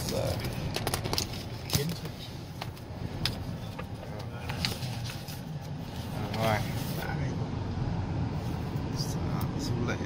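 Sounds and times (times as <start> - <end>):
car cabin road rumble: 0.0 - 10.0.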